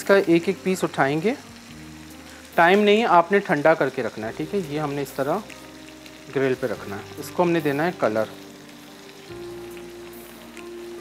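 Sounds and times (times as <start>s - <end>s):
chicken sizzling on grill: 0.0s - 11.0s.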